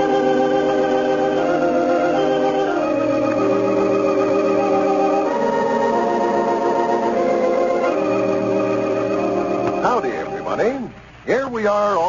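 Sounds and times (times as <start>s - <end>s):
organ music sustained chord: 0.0s - 11.2s.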